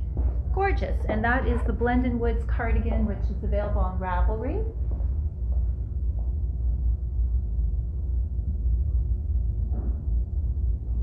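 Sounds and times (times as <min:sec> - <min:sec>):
faint hum: 0:00.0 - 0:11.0
low rumble: 0:00.0 - 0:11.0.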